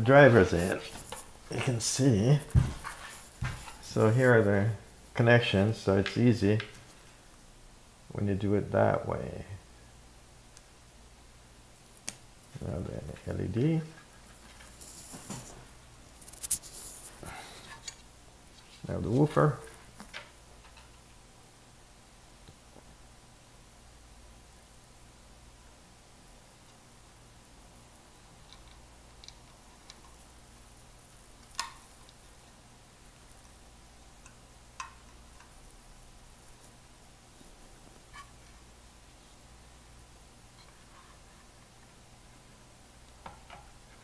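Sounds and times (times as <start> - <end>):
hands rustling with wires: 0.2 - 4.4, 13.9 - 20.8
light ticks of wire handling: 28.4 - 32.6, 33.2 - 36.8.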